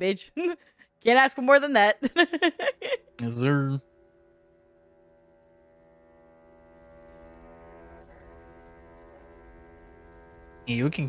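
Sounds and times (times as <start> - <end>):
brass-like droning chord: 3.2 - 11.0.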